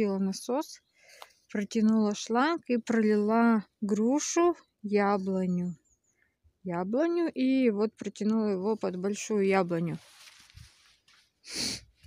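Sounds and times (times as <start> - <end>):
breathy sniff: 11.4 - 12.0.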